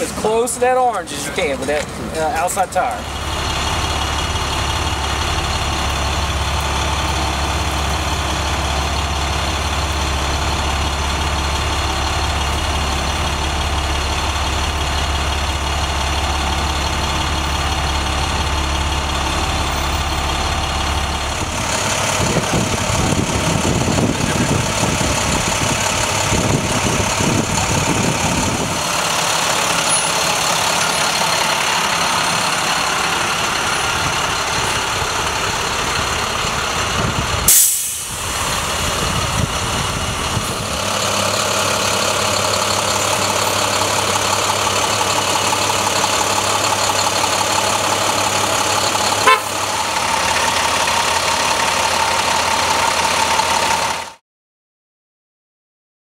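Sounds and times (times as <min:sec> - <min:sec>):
bus engine humming: 0:00.0 - 0:54.2.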